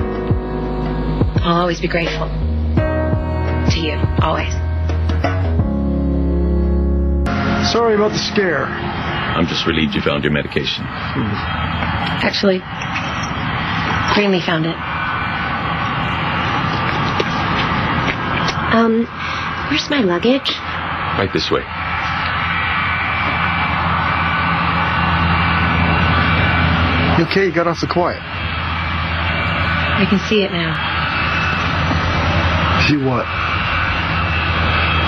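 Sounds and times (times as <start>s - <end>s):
aircraft engine drone: 0.0s - 35.0s.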